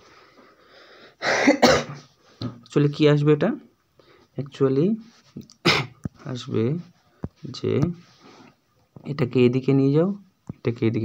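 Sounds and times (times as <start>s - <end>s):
person coughing: 1.2s - 2.1s, 5.6s - 6.0s.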